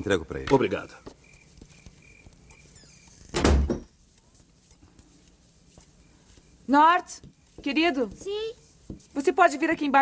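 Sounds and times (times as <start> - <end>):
crickets chirping: 0.0 - 3.9
door shutting with heavy thud: 3.3 - 3.9.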